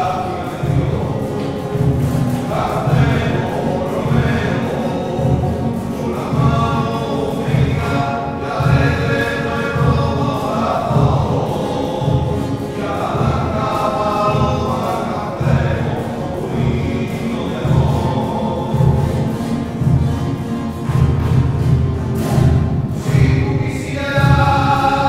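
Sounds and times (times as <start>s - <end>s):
men singing a hymn in chorus: 0.0s - 20.3s, 23.0s - 25.0s
steady low beat: 0.0s - 25.0s
strummed acoustic guitar: 0.0s - 25.0s.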